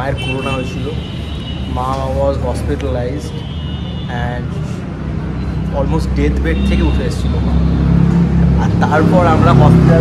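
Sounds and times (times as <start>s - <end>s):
man talking: 0.0s - 1.1s, 1.7s - 3.4s, 4.1s - 4.8s, 5.7s - 7.7s, 8.6s - 10.0s.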